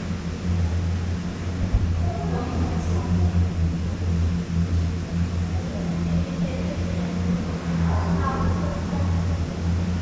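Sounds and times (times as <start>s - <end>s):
conveyor lift mechanical hum: 0.0s - 10.0s.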